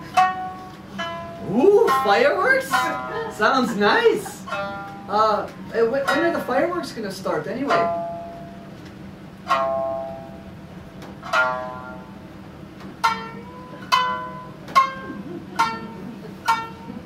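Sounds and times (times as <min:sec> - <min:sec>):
plucked string notes: 0:00.0 - 0:17.0
steady low hum: 0:00.0 - 0:17.0.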